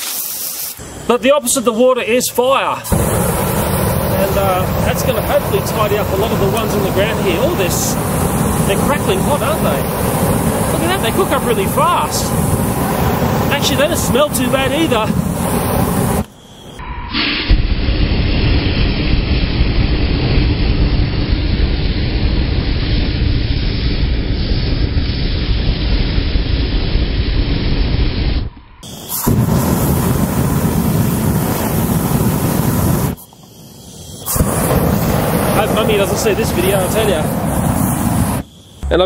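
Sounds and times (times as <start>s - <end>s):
flame blasting whoosh: 0.0s - 1.0s, 2.8s - 38.8s.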